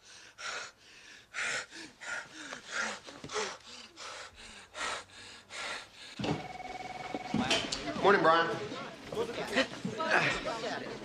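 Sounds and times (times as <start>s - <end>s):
person gasping for breath: 0.0s - 6.2s.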